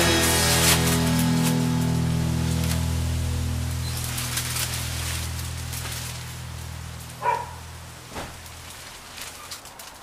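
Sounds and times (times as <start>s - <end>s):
low droning tone: 0.0s - 8.1s
faint crackling hiss: 0.5s - 10.0s.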